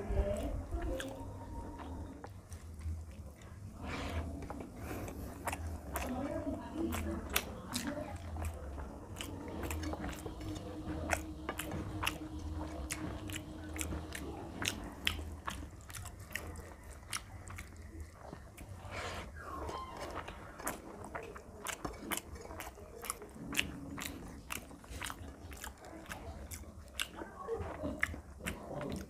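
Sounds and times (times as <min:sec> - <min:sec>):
person chewing food: 0:00.0 - 0:29.0
fingers squishing rice: 0:00.4 - 0:29.0.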